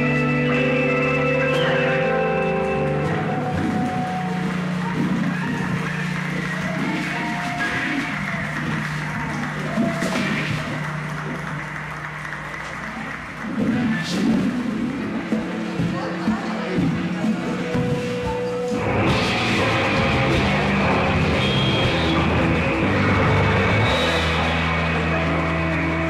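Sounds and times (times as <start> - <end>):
electric guitar drone: 0.0 - 15.8, 18.6 - 26.0
audience noise: 0.0 - 26.0
audience clapping: 2.6 - 15.8, 18.8 - 26.0
live rock band: 17.9 - 26.0.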